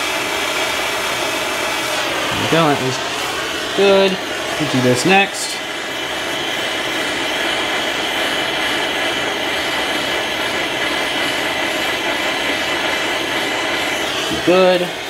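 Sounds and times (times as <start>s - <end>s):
gas torch hissing: 0.0s - 15.0s.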